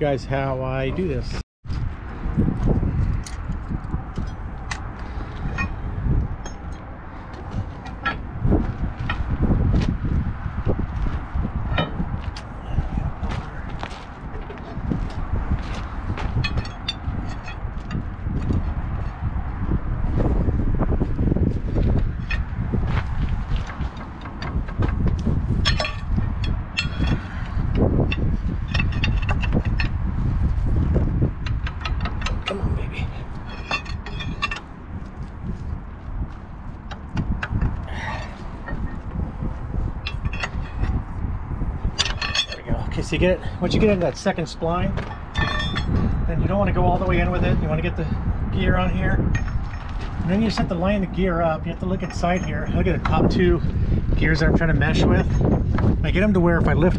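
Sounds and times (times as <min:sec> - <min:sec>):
low rumble: 0:00.0 - 0:56.9
metal clinking and tapping: 0:06.4 - 0:08.2, 0:11.7 - 0:12.5, 0:16.2 - 0:18.6, 0:23.6 - 0:30.0, 0:31.4 - 0:32.6, 0:33.3 - 0:34.7, 0:40.0 - 0:41.2, 0:41.9 - 0:42.7, 0:45.0 - 0:46.1, 0:49.3 - 0:50.7.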